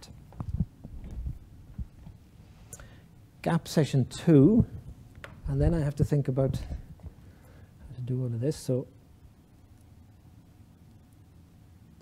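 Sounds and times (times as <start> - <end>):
faint steady hum: 0.0 - 12.0
soft low thumps: 0.4 - 2.2.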